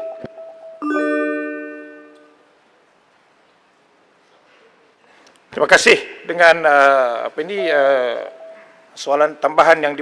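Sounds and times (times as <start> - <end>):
chime ringing: 0.0 - 2.4.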